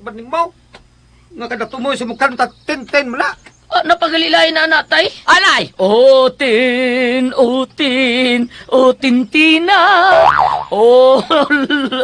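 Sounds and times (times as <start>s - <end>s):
person vocalising sing-song: 5.8s - 11.6s.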